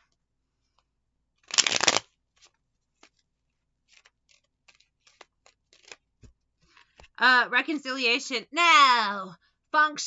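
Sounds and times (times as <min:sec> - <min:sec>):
cards riffling: 0:01.4 - 0:03.2, 0:03.8 - 0:07.1.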